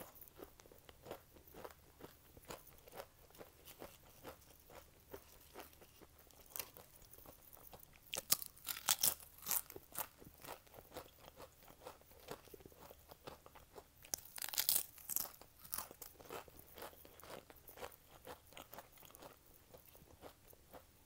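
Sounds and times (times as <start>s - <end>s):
crunching potato crisps: 0.0s - 20.8s.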